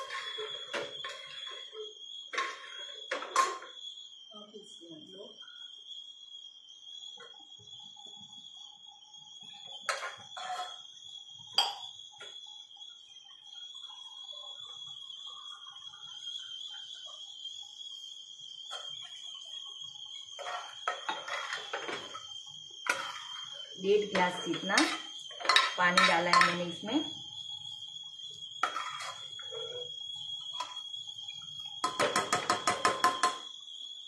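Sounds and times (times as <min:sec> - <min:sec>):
steady high-pitched whine: 0:00.0 - 0:34.0.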